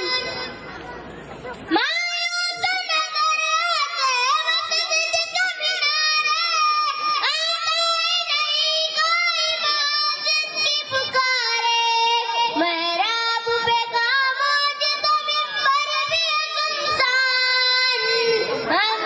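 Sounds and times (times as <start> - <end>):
boy singing devotional song: 0.0 - 0.7, 1.7 - 19.0.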